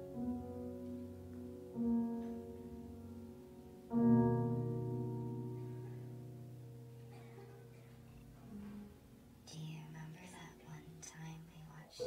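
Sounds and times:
faint whispering: 9.5s - 12.0s.

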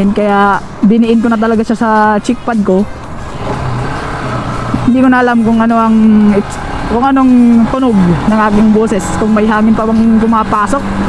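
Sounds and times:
low engine hum: 0.0s - 11.0s.

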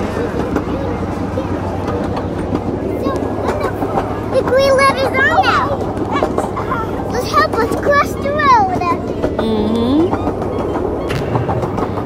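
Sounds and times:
miniature train rumbling: 0.0s - 12.0s
wheels clicking on rails: 0.0s - 12.0s.

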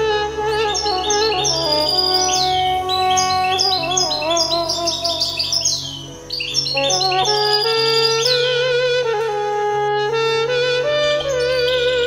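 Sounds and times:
songbird chirping and trilling: 0.0s - 9.7s, 11.0s - 12.0s
background instrumental music: 0.0s - 12.0s.

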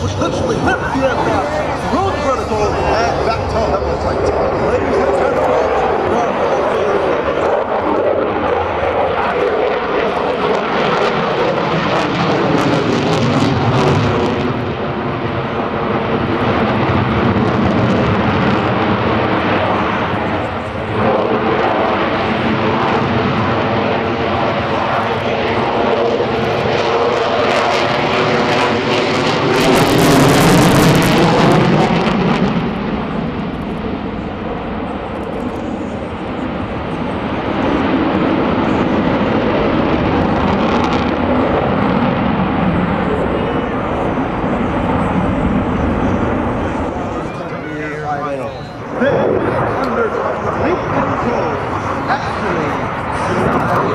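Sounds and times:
fighter jet engine roar: 0.0s - 53.9s.

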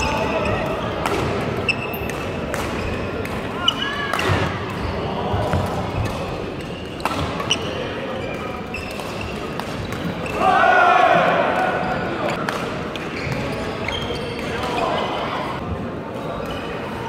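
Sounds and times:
racket hitting shuttlecock: 1.0s - 4.8s, 5.5s - 7.7s.

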